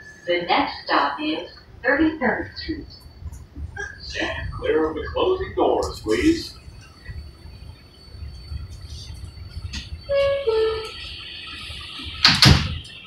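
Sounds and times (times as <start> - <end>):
low hum of train: 0.0 - 13.0
train doors sliding shut: 8.9 - 13.0
two-note door chime: 10.1 - 11.0.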